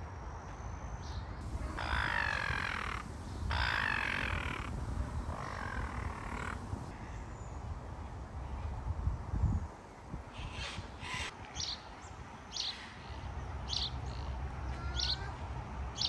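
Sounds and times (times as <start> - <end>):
steady low rumble: 1.4 - 6.9
raven cawing: 1.4 - 7.0.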